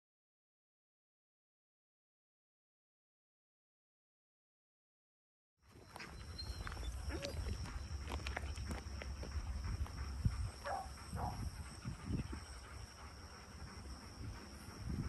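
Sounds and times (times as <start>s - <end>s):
high insect drone: 5.7s - 15.0s
wind rumbling on microphone: 6.0s - 15.0s
dog whining: 6.1s - 7.6s.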